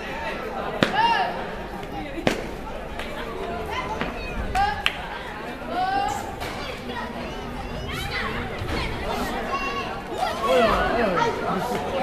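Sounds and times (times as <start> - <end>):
children and adults talking: 0.0 - 12.0.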